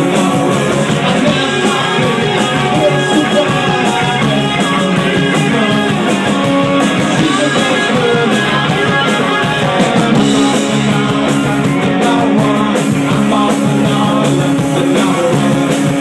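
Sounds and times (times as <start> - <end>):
live punk rock band: 0.0 - 16.0.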